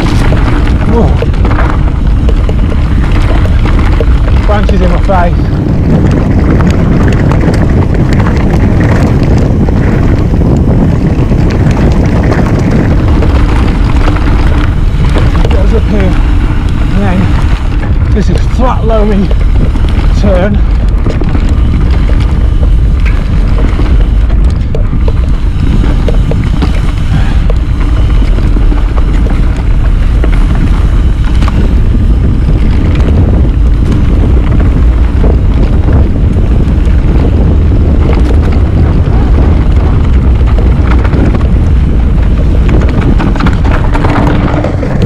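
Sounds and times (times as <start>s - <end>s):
bike knocking and rattling: 0.0s - 45.0s
tyres on dirt: 0.0s - 45.0s
wind buffeting microphone: 0.0s - 45.0s.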